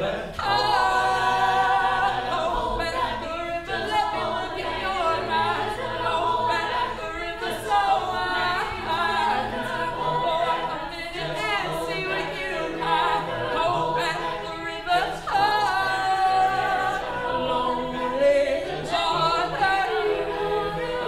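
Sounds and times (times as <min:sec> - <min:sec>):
a cappella group singing: 0:00.0 - 0:21.0.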